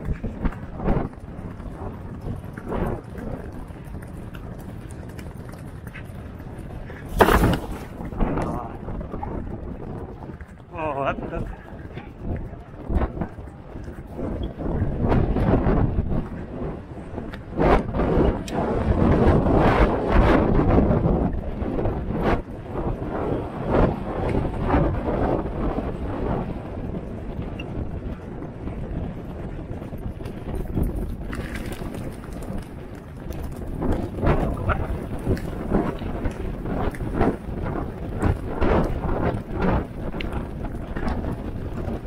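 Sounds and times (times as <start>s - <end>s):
wind buffeting microphone: 0.0s - 42.0s
thumps: 7.0s - 8.5s.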